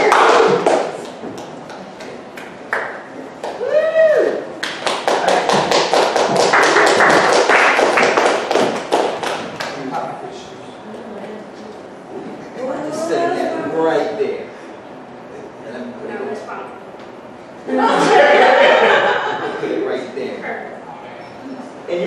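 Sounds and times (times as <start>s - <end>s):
audience clapping: 0.0s - 3.7s, 4.6s - 9.9s
person whooping: 3.5s - 4.6s.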